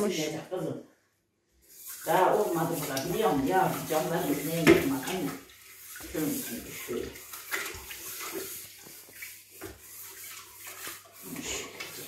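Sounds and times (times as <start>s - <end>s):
tap water splashing into sink: 1.8s - 12.0s.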